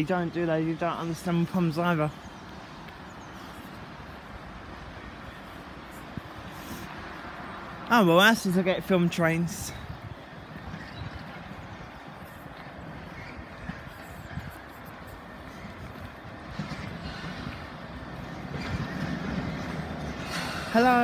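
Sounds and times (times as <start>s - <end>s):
distant train rumble: 0.0s - 21.0s.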